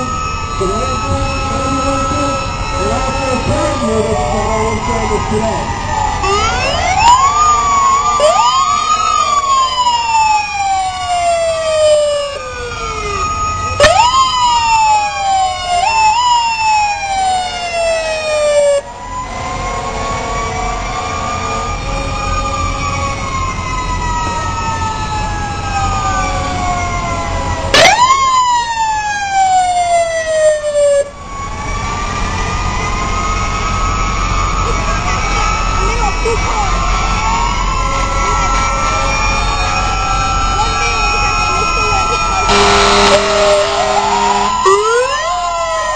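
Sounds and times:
siren winding up sharply: 0.0 - 2.9, 5.3 - 22.6, 27.7 - 31.6, 39.6 - 45.9
siren wailing: 0.0 - 45.9
low engine rumble: 18.4 - 45.9.

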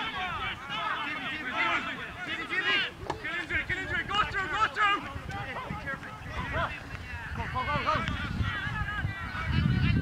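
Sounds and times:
voices shouting short calls: 0.0 - 9.9
wind rumble on microphone: 3.0 - 10.0.

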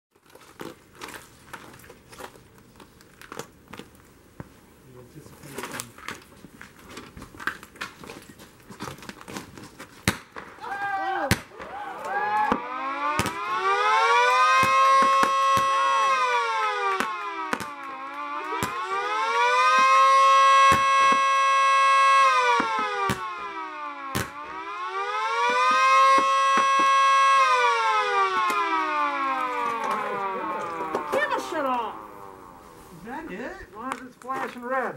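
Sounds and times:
firework bangs and pops: 8.9 - 21.4, 22.5 - 23.4, 24.1 - 27.4
two-tone siren wailing: 10.6 - 33.3.

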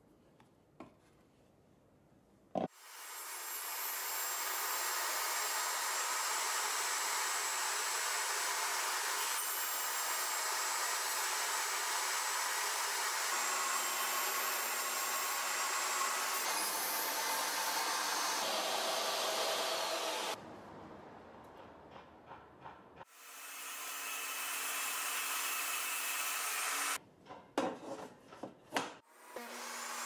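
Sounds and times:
table saw running: 2.8 - 20.4.

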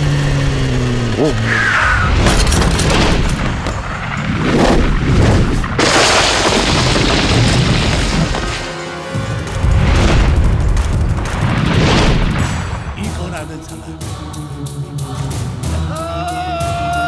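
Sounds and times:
dramatic background score: 7.9 - 17.0.

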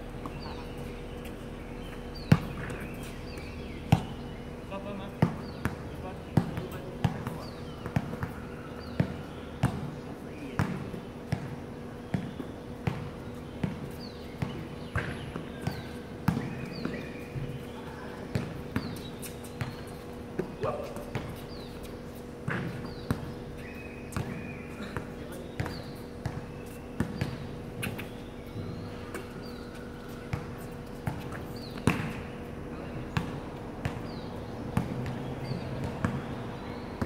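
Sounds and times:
steady low hum: 0.0 - 37.0
basketball bouncing on hard court: 2.2 - 4.2, 5.2 - 9.9, 10.6 - 17.5, 18.3 - 19.9, 22.4 - 23.4, 24.1 - 28.2, 30.3 - 32.3, 33.1 - 36.4.

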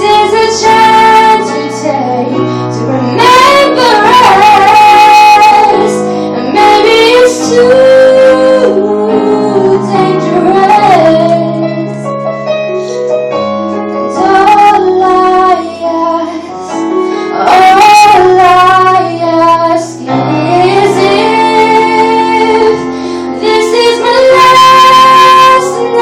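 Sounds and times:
young woman singing: 0.0 - 12.0, 14.1 - 26.0.

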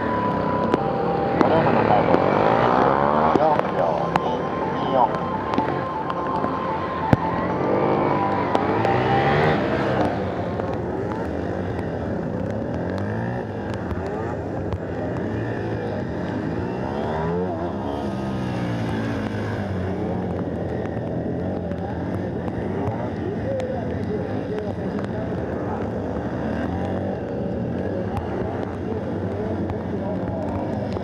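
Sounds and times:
motorcycle engine revving: 0.0 - 31.0.

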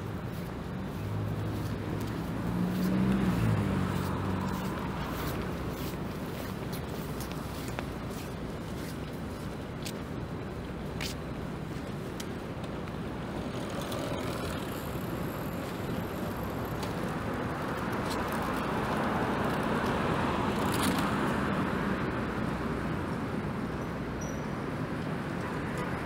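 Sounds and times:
passing cars and tyres: 0.0 - 26.0.

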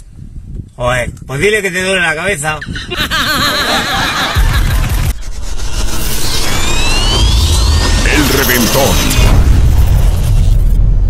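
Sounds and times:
low rumbling build-up: 2.8 - 11.0
rising sweep: 3.2 - 11.0
ident hit: 4.2 - 11.0.

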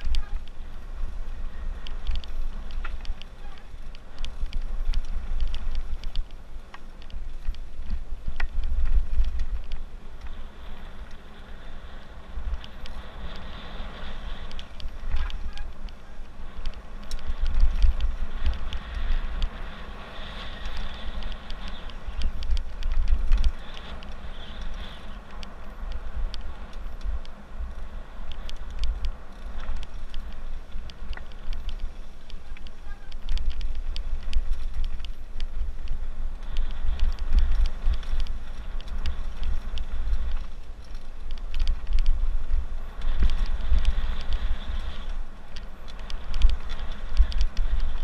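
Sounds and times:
bike rattling and clattering: 0.0 - 48.0
bike tyres rolling on gravel: 0.0 - 48.0
wind buffeting microphone: 0.0 - 48.0.

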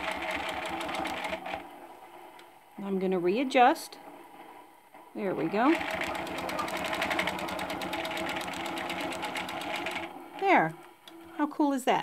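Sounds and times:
quilting machine needle strokes: 0.0 - 1.6, 5.2 - 11.3.

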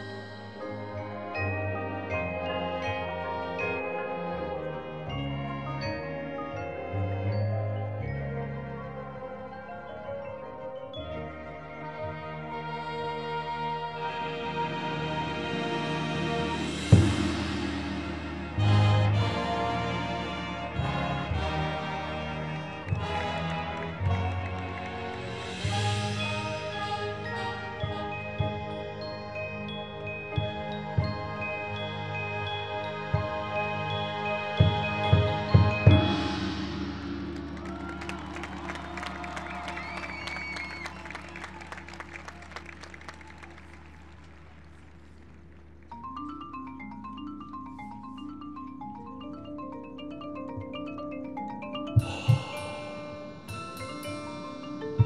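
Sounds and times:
marching band playing: 11.4 - 43.1, 51.9 - 55.0
crowd applauding and cheering: 17.4 - 26.7, 37.2 - 45.4
whistles: 37.4 - 44.3.

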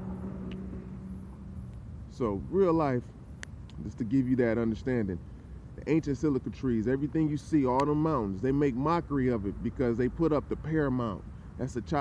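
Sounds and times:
steady hum: 0.0 - 5.9
traffic rumble: 0.0 - 12.0.

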